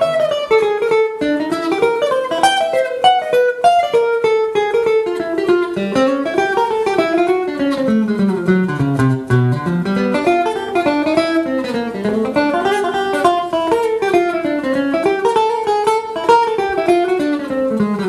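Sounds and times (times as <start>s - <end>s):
acoustic guitar jazz solo: 0.0s - 18.0s.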